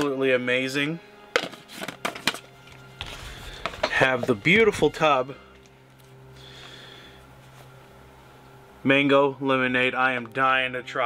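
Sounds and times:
rustling handling noise: 0:01.4 - 0:06.2.

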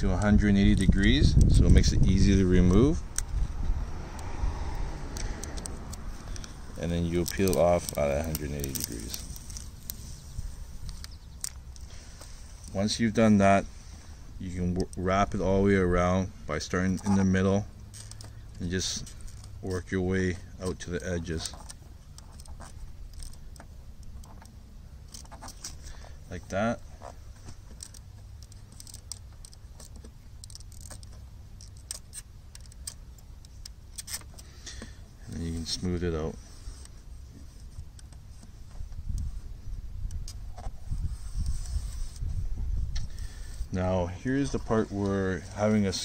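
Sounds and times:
low outdoor rumble: 0:00.0 - 0:46.0
faint ticks of handled vinyl: 0:04.2 - 0:14.1
small ticks and crackles of film: 0:04.7 - 0:12.8, 0:20.7 - 0:35.5.

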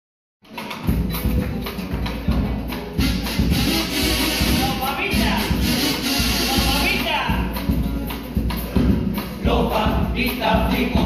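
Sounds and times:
guitars: 0:00.4 - 0:11.0.

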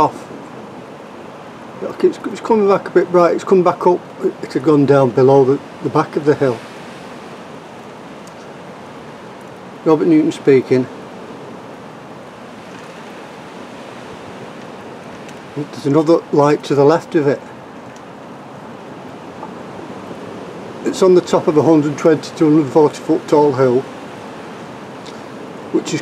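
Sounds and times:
outdoor background hiss: 0:00.0 - 0:26.0
man's voice: 0:01.8 - 0:06.6, 0:09.9 - 0:10.9, 0:15.6 - 0:17.5, 0:20.8 - 0:23.9, 0:25.8 - 0:26.0.

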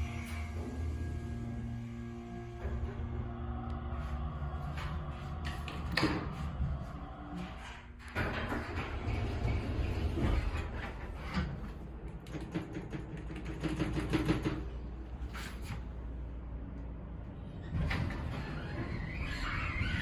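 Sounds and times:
elevator hum: 0:00.0 - 0:20.0
elevator doors sliding open: 0:02.5 - 0:12.5, 0:17.2 - 0:20.0.

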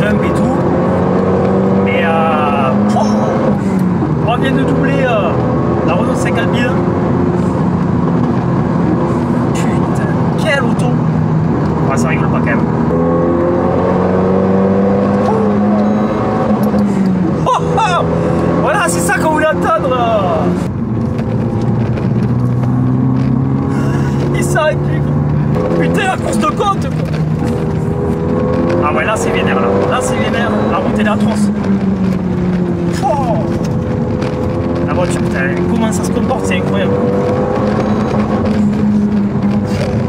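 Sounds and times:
car engine accelerating: 0:00.0 - 0:40.0.

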